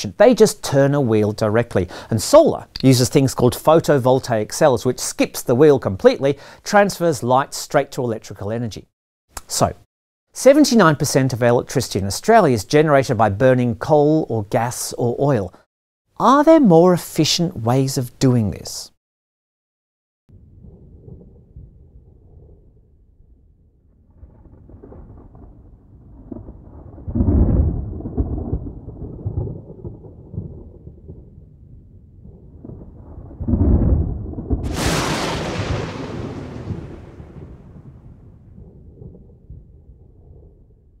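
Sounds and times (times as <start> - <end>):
sharp thunderclap: 20.3 - 22.7, 23.9 - 40.7
rolling thunder: 20.3 - 41.0.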